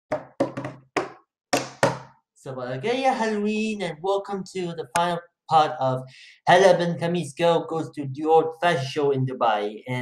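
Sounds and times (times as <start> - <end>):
knocking on hard surface: 0.1 - 2.2.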